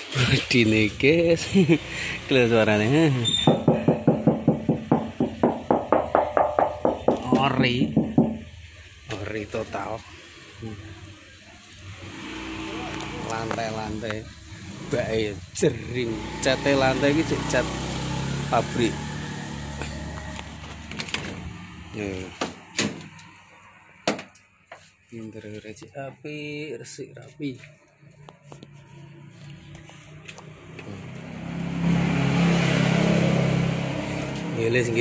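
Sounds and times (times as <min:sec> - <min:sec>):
fingers tapping steel car door: 0:03.5 - 0:08.5.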